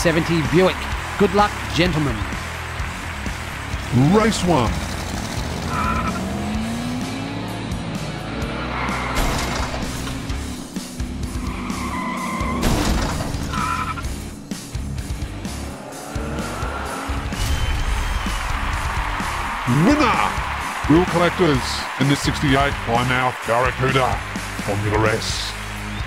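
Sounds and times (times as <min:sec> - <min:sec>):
background music: 0:00.0 - 0:26.0
race car engines revving: 0:00.0 - 0:26.0
tyre squeals: 0:05.7 - 0:06.2, 0:11.3 - 0:14.0.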